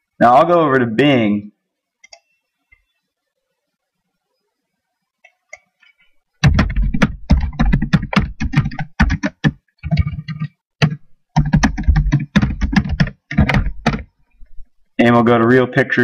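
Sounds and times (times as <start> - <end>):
computer keyboard typing: 6.4 - 14.1.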